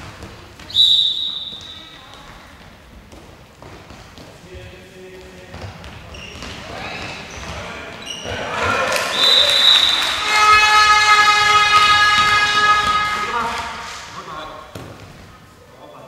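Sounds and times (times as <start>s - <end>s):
handball bouncing: 0.0s - 7.7s, 9.1s - 14.0s, 14.6s - 15.4s
shoes squeaking on floor: 0.0s - 15.6s
shrill whistle blast: 0.7s - 1.9s, 9.1s - 12.8s
crowd cheering: 8.3s - 14.1s
spectator's horn: 9.0s - 14.2s.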